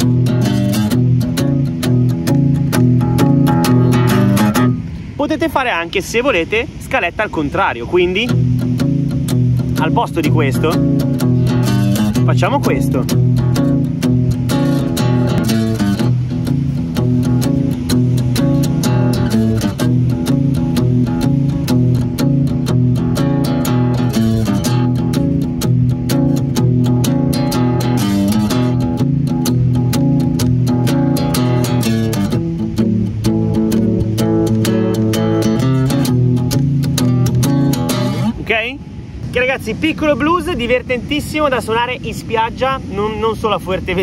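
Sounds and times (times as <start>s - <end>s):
acoustic guitar blues shuffle: 0.0s - 44.0s.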